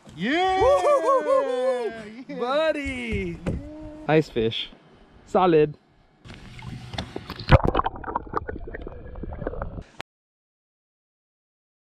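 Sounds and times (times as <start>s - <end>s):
water splashing and gurgling: 6.4s - 9.9s.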